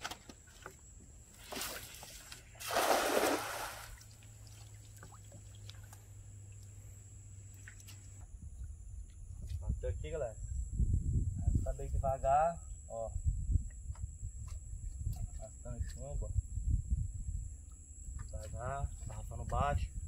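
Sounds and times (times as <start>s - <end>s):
water sloshing and splashing: 0.0s - 6.8s
water dripping: 2.6s - 6.8s.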